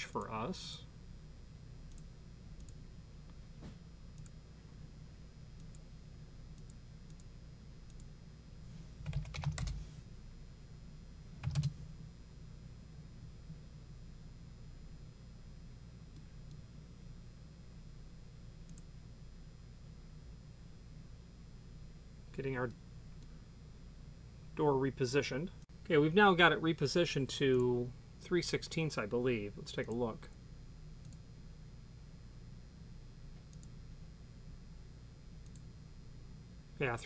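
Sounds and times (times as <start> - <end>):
faint low hum: 0.0 - 37.0
computer keyboard keystrokes: 9.0 - 9.8, 11.4 - 11.8.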